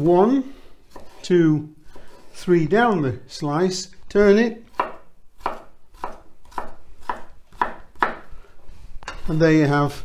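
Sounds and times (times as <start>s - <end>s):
knife strikes on wooden board: 4.7s - 8.3s.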